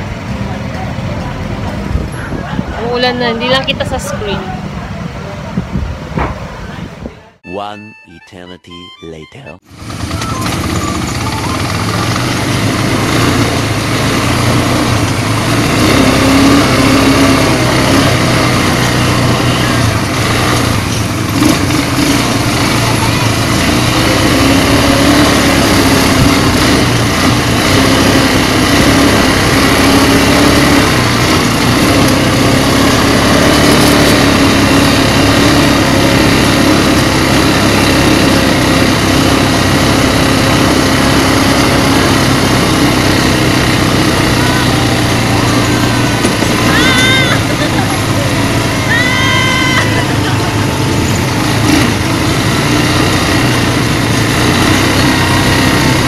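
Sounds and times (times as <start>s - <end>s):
quad bike engines running: 0.0s - 6.9s, 9.7s - 56.0s.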